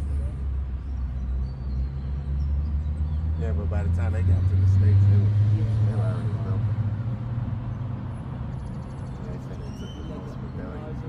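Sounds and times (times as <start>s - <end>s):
passing vehicle engine rumble: 0.0s - 11.0s
faint voices: 9.1s - 11.0s.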